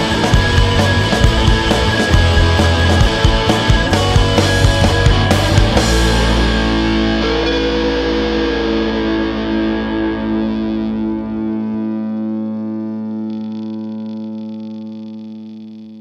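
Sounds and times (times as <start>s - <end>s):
distorted electric guitar chord ringing: 0.0s - 16.0s.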